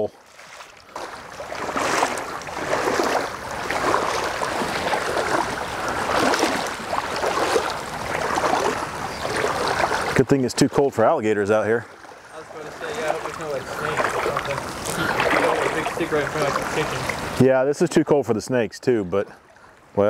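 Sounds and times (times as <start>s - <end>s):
wading through shallow water: 0.0s - 20.0s.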